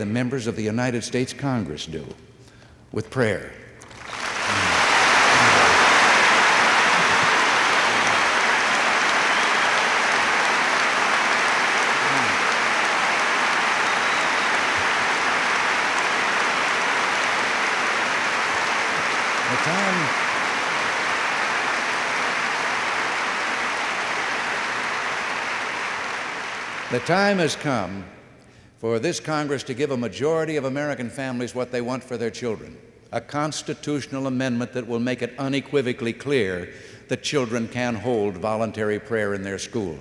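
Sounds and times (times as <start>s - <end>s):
large audience applauding: 3.8s - 27.5s
faint shouts: 12.0s - 12.7s.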